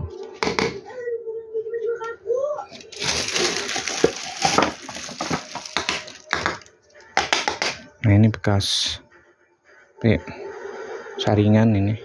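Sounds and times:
background voices: 1.8 - 6.7
plastic rustling and knocking: 2.8 - 7.8.

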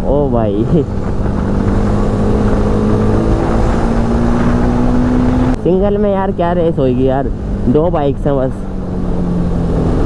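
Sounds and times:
motorcycle engine running: 0.0 - 10.0
wind rushing over microphone: 0.0 - 10.0.

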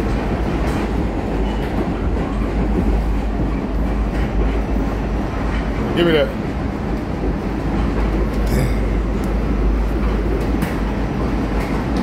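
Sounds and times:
subway train rumbling on rails: 0.0 - 12.0.

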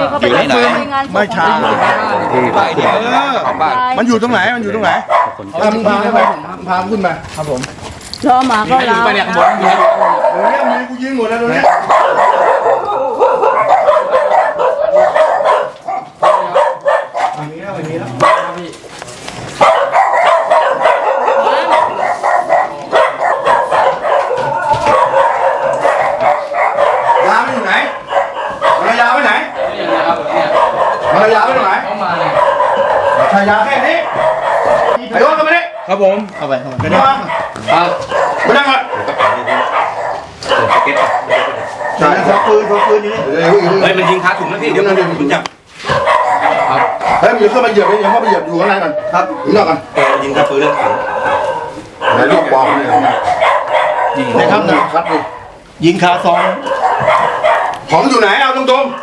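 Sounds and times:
dog barking: 0.0 - 6.9, 8.6 - 59.0
men's voices: 0.0 - 7.8, 8.5 - 59.0
people talking at once: 0.0 - 14.4, 20.5 - 39.8.

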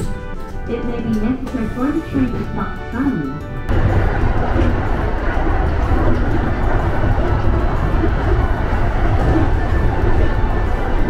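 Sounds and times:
train wheels rumbling on rails: 0.8 - 11.0.

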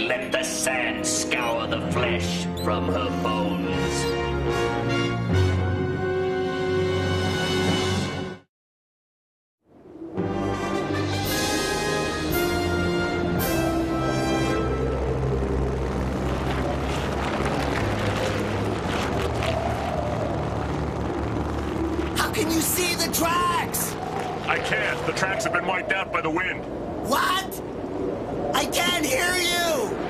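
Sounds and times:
sandstorm wind: 14.0 - 30.0.

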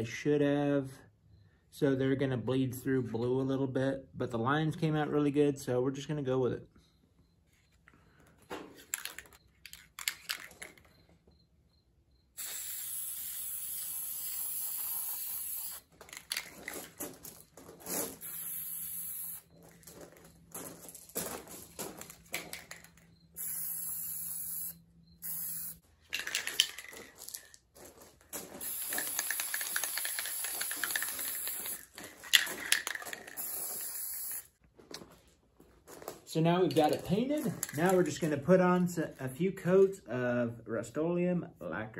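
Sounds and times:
spray paint can hissing: 12.4 - 17.0, 18.2 - 19.5, 22.0 - 27.4, 28.6 - 34.6.

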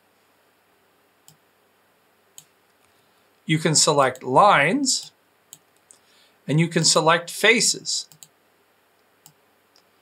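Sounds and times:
computer mouse clicking: 8.1 - 8.3, 9.2 - 9.9.

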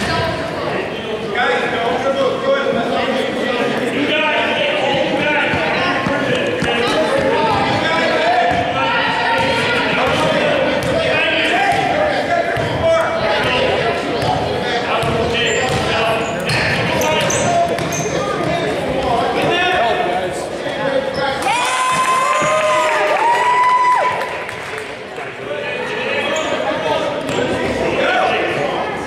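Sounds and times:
voices echoing in gym: 0.0 - 29.0
sneakers squeaking: 13.4 - 19.6, 21.0 - 21.5, 26.2 - 27.8.

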